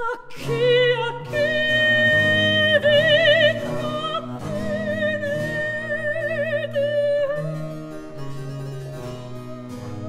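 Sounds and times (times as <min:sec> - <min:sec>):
woman singing aria with vibrato: 0:00.0 - 0:08.3
bowed bass accompaniment: 0:00.3 - 0:10.0
harpsichord: 0:06.6 - 0:10.0.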